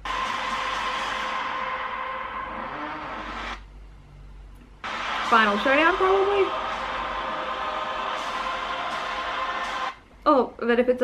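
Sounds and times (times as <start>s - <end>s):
loud rushing noise with tone: 0.0s - 3.6s, 4.8s - 10.0s.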